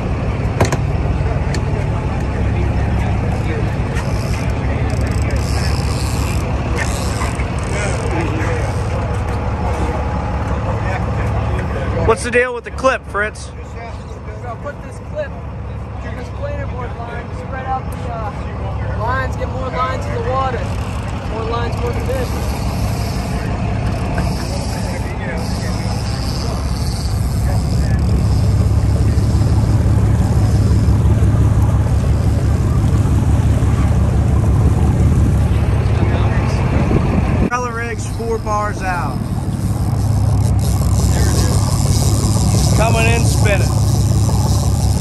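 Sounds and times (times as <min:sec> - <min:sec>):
boat engine droning: 0:00.0 - 0:45.0
wind: 0:00.0 - 0:45.0
faint unclear voices: 0:01.0 - 0:12.1, 0:15.6 - 0:36.9
water rushing: 0:19.0 - 0:45.0.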